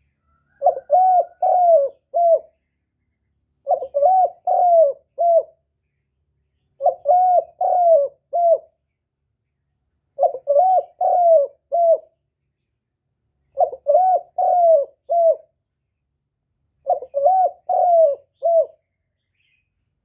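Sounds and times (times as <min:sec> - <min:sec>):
dove cooing: 0:00.0 - 0:02.6, 0:03.6 - 0:05.6, 0:06.8 - 0:08.8, 0:10.2 - 0:12.2, 0:13.5 - 0:15.6, 0:16.8 - 0:18.8.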